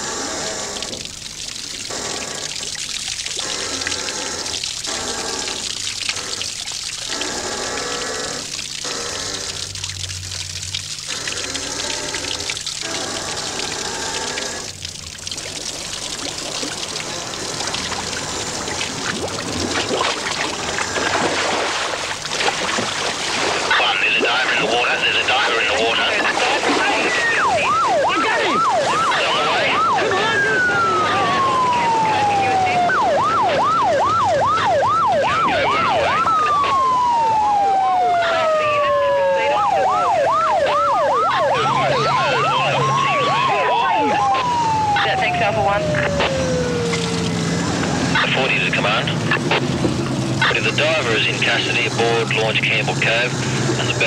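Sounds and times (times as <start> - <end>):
police siren yelp and wail: 10.8 - 49.8, 50.4 - 54.0
low engine hum: 39.6 - 54.0.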